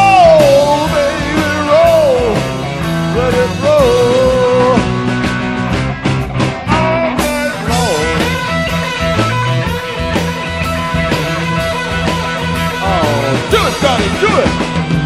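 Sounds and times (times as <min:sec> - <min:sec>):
bass guitar: 0:00.0 - 0:15.0
drums: 0:00.0 - 0:15.0
electric guitar bent notes: 0:00.0 - 0:15.0.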